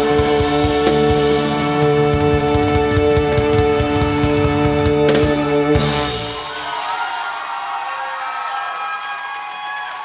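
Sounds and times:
audience cheering and applauding: 0:01.5 - 0:10.0.

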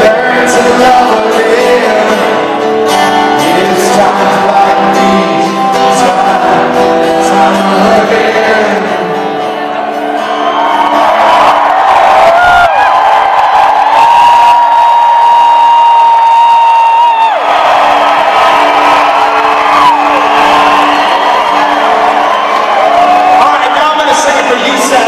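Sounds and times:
acoustic guitars ringing: 0:00.0 - 0:11.6
crowd cheering and whooping: 0:07.4 - 0:25.0.

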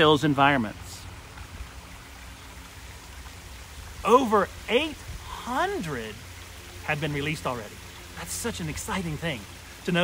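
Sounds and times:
waterfall trickling into pond: 0:00.0 - 0:10.0.

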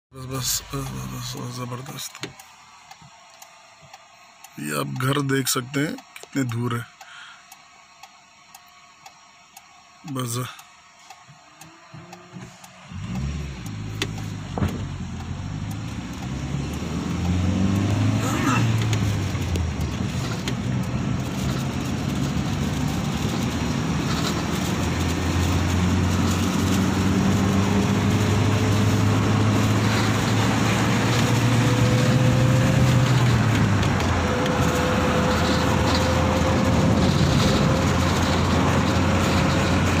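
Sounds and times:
car engine drone: 0:00.1 - 0:40.0
road noise inside car: 0:00.2 - 0:40.0.

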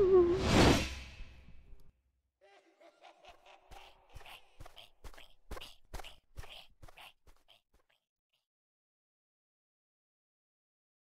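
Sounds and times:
wavering tone sliding down: 0:00.0 - 0:00.6.

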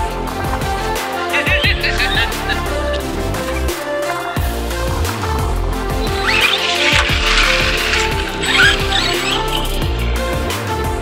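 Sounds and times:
electronic background music: 0:00.0 - 0:11.0
rc truck motor squealing: 0:01.4 - 0:04.4, 0:05.7 - 0:10.4.

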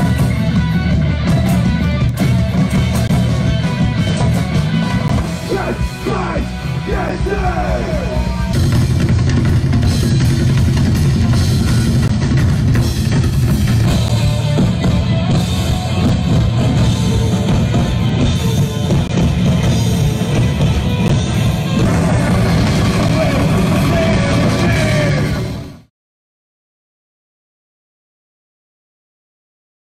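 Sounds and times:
live rock band: 0:00.0 - 0:25.9
taiko drums: 0:06.9 - 0:25.3.

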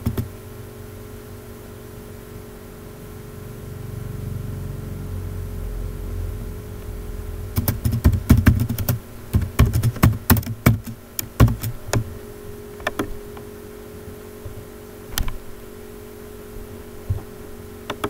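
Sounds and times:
low rumble: 0:03.6 - 0:09.3
keyboard keystroke clicks: 0:07.6 - 0:12.0.

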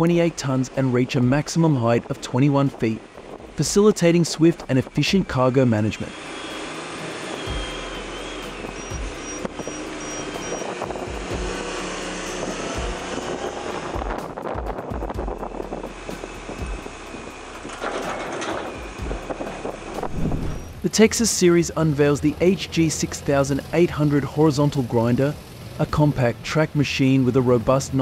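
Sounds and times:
background music: 0:00.0 - 0:25.6
diesel engine running: 0:00.0 - 0:28.0.

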